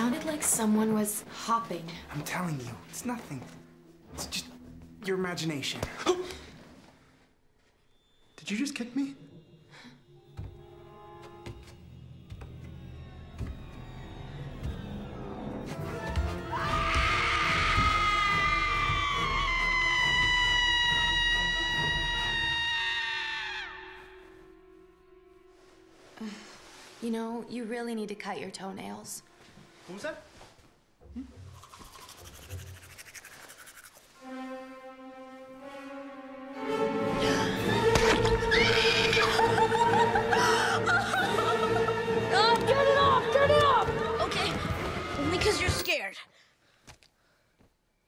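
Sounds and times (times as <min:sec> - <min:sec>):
horror film score: 0:07.9 - 0:27.0, 0:34.2 - 0:45.8
long shrill scream: 0:16.5 - 0:24.2, 0:38.4 - 0:39.4.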